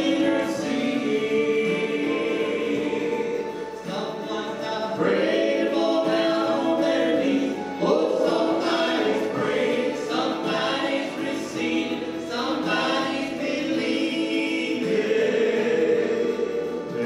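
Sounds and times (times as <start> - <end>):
trio singing gospel in harmony: 0.0 - 17.0.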